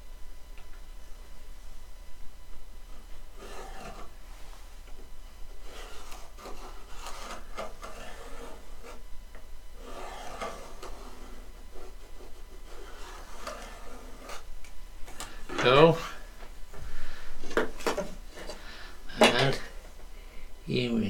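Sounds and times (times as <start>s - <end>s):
pencil scratching along ruler: 3.3s - 4.2s, 5.6s - 9.0s, 9.8s - 14.5s.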